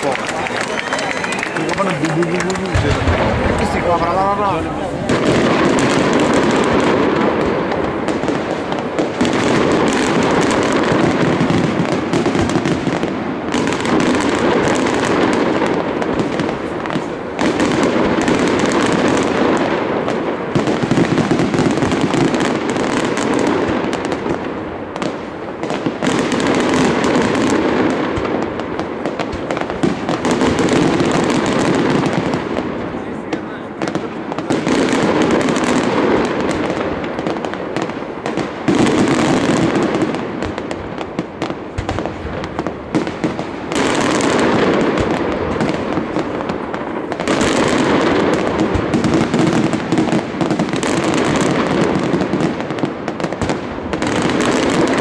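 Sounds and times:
fireworks bangs and crackling: 0.0s - 55.0s.

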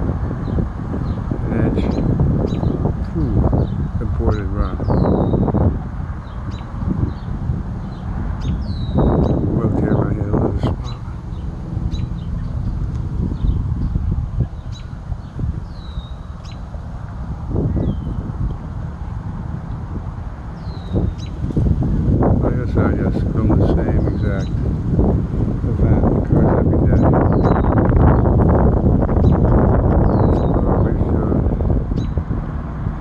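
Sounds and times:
low wind rumble on microphone: 0.0s - 33.0s.

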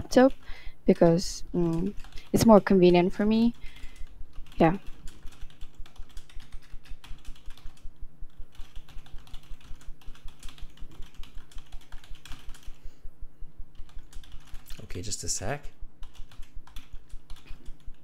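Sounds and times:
computer keyboard typing: 1.5s - 12.8s, 13.7s - 15.2s, 16.0s - 18.0s.

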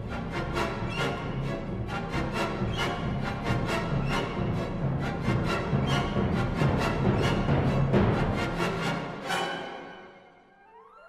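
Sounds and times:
symphonic band with timpani: 0.0s - 10.1s.

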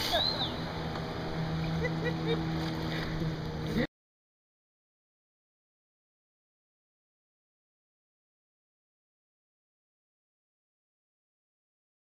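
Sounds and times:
low motor drone: 0.0s - 3.9s.

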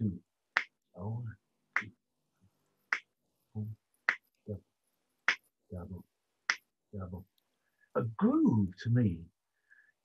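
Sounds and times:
person counting: 0.0s - 2.0s, 2.7s - 7.4s
finger snaps: 0.6s - 0.8s, 1.8s - 2.0s, 2.9s - 3.2s, 6.5s - 6.8s.

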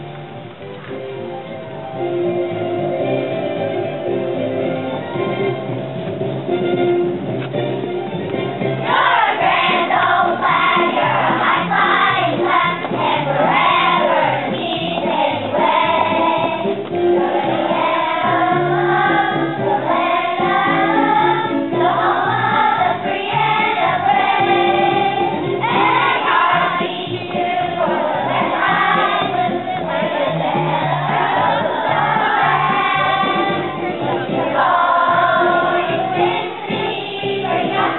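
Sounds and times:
children's choir singing: 8.8s - 37.9s.

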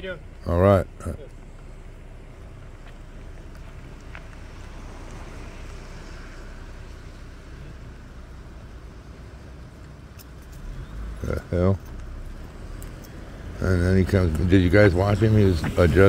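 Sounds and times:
vehicle engine idling: 0.0s - 16.0s.

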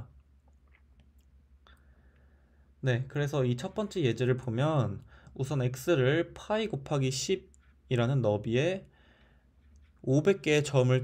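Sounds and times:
man speaking: 0.0s - 0.2s, 2.8s - 9.0s, 9.8s - 11.0s.

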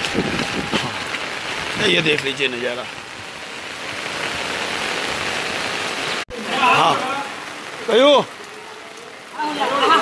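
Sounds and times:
fast-running floodwater: 0.0s - 10.0s
rain: 0.0s - 10.0s.

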